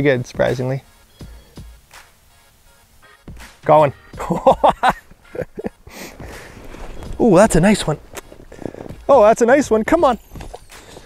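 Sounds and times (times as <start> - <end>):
man laughing: 4.2 - 6.3
snow and clothing crunching: 4.2 - 11.0.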